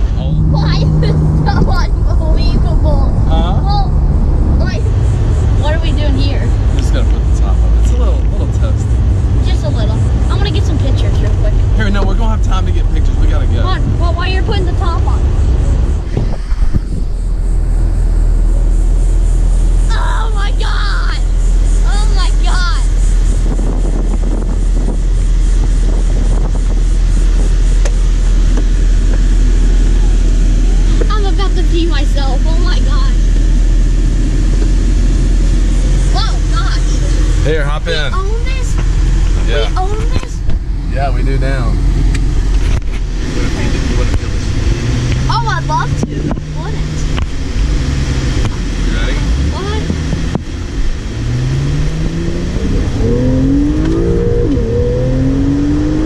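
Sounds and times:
car engine and road noise: 0:00.0 - 0:56.0
steady low hum: 0:00.0 - 0:56.0.

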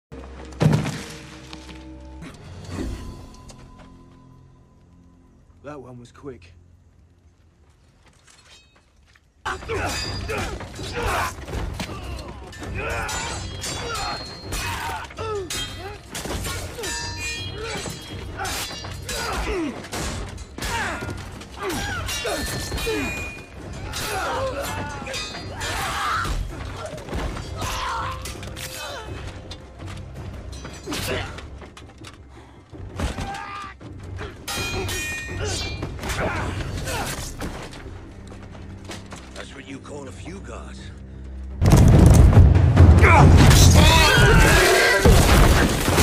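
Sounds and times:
held background music tones: 0:00.1 - 0:46.0
steel blades clashing: 0:12.0 - 0:21.0, 0:21.6 - 0:26.4, 0:34.5 - 0:37.2
men grunting and crying out: 0:17.5 - 0:20.0, 0:20.6 - 0:29.3, 0:43.0 - 0:45.8.

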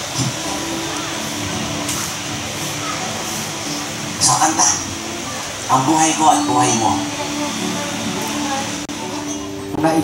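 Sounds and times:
room and sound system hiss: 0:00.0 - 0:10.0
soft instrumental music: 0:00.0 - 0:10.0.

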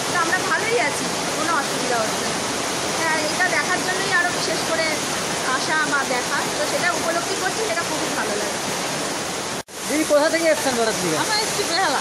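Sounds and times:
heavy rain: 0:00.0 - 0:12.0
woman talking: 0:03.0 - 0:08.5.

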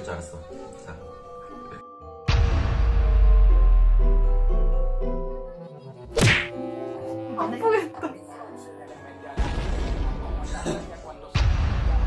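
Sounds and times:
sharp whack: 0:06.1 - 0:06.6.

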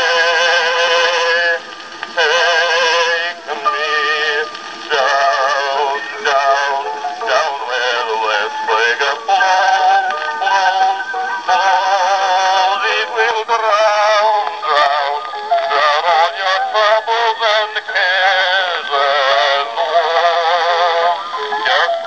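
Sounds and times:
man singing on old phonograph: 0:00.0 - 0:22.0.

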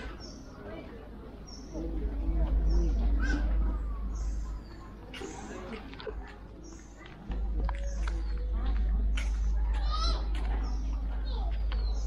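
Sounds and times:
low microphone rumble: 0:01.2 - 0:12.0
high bird chirp: 0:07.7 - 0:12.0.

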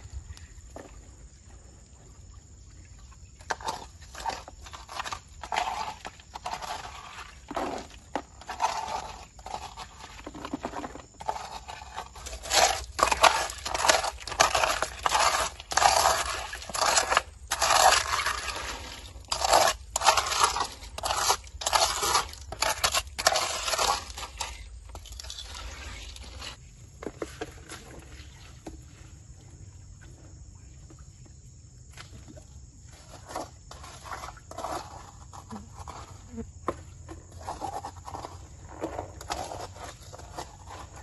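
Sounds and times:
hand raking through wet gravel: 0:03.5 - 0:28.6, 0:33.0 - 0:36.2, 0:37.2 - 0:41.0.

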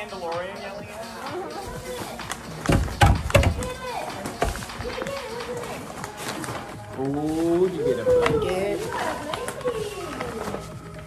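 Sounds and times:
background music: 0:00.0 - 0:11.0
voices: 0:00.0 - 0:11.0
paper crinkling and tearing: 0:05.6 - 0:11.0.

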